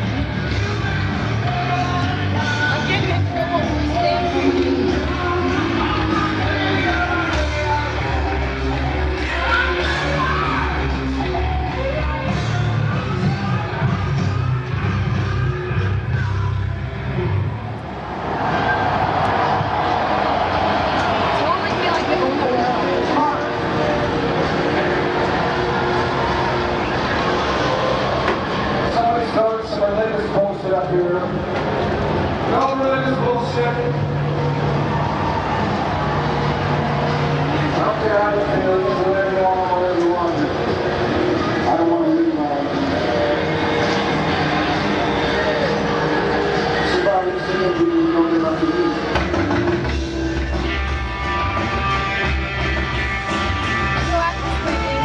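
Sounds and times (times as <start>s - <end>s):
distant live rock band: 0.0s - 55.0s.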